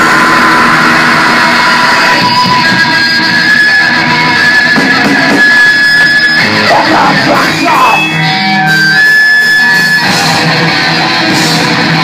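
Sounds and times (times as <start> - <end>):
thrash metal band playing: 0.0 - 12.0.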